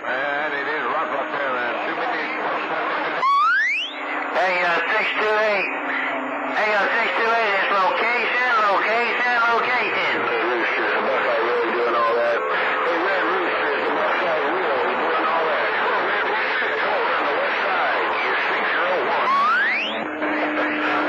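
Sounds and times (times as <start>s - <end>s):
garbled radio voices: 0.0s - 21.0s
radio static: 0.0s - 21.0s
whistle rising in pitch: 3.2s - 4.0s, 19.2s - 20.1s
steady low heterodyne tone: 12.4s - 21.0s.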